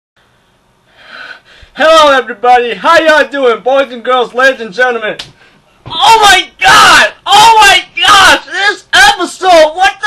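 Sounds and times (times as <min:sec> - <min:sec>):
man breathing in: 0:00.3 - 0:01.8
man speaking: 0:01.8 - 0:05.2, 0:05.9 - 0:10.0.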